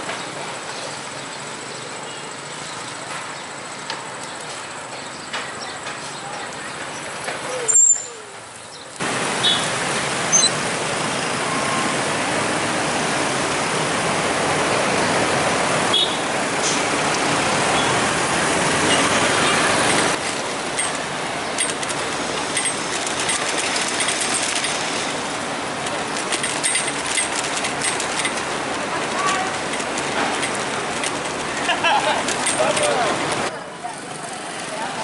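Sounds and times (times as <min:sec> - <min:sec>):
motorbike and car traffic: 0:00.0 - 0:35.0.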